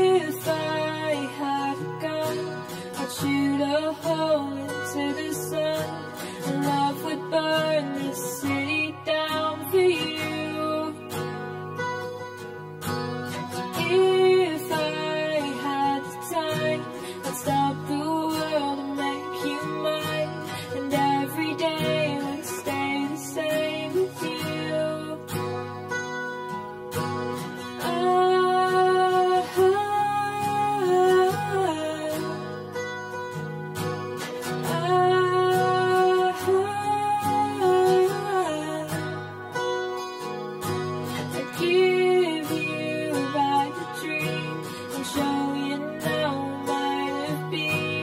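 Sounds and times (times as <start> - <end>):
woman singing: 0.0 - 11.8, 12.8 - 25.9, 27.3 - 33.4, 34.0 - 48.0
acoustic guitar strumming: 0.0 - 48.0.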